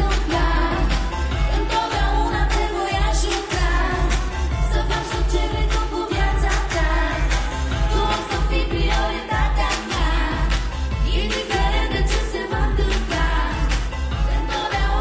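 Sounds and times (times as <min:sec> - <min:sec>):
pop backing track with bass beat: 0:00.0 - 0:15.0
woman singing into microphone: 0:00.0 - 0:15.0.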